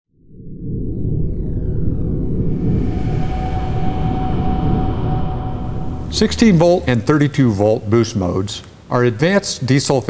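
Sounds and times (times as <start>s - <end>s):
deep rumbling drone: 0.2s - 8.4s
faint held high tone: 2.1s - 8.1s.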